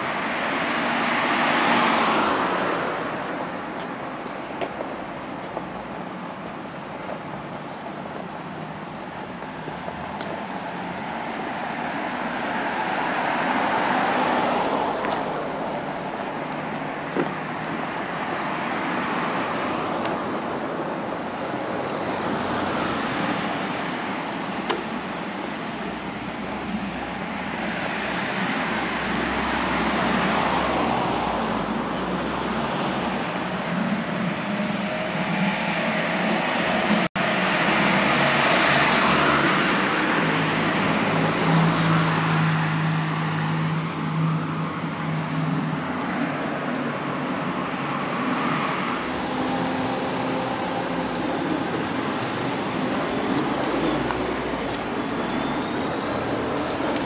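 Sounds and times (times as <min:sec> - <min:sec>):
cars passing: 0:00.0 - 0:57.0.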